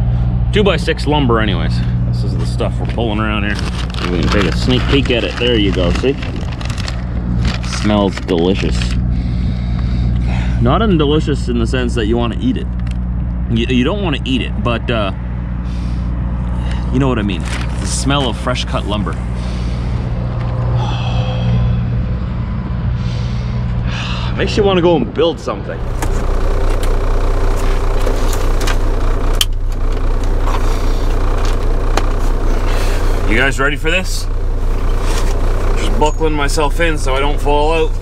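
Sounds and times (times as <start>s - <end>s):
diesel truck engine idling: 0.0s - 24.9s, 25.7s - 38.0s.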